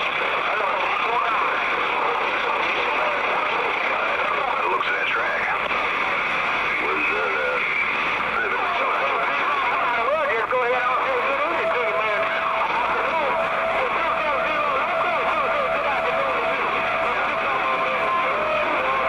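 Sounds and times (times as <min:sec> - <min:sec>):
garbled radio voices: 0:00.0 - 0:19.0
radio static hiss: 0:00.0 - 0:19.0.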